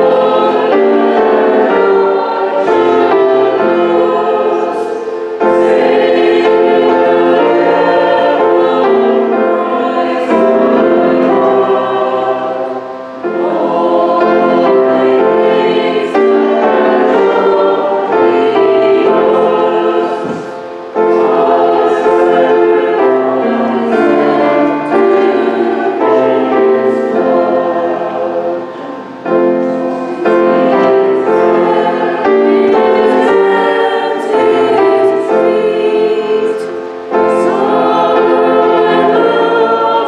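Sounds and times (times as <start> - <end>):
choir and congregation singing hymn: 0.0 - 40.0.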